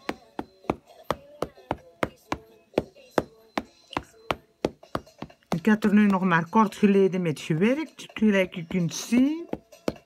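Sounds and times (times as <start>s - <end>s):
ink pad tapping on stamp: 0.0s - 5.4s.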